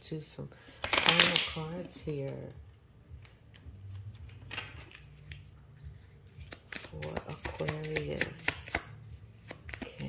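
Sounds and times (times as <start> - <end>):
cards being shuffled: 0.8 - 2.5, 3.2 - 10.0.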